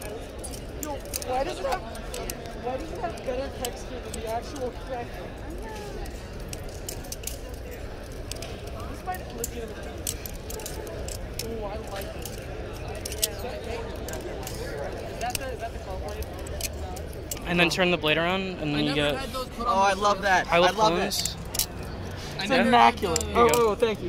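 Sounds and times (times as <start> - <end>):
butterfly knife clicking and clacking: 0.0 - 4.7, 5.6 - 17.5, 21.2 - 22.2, 23.0 - 23.8
indistinct background voices: 0.0 - 24.0.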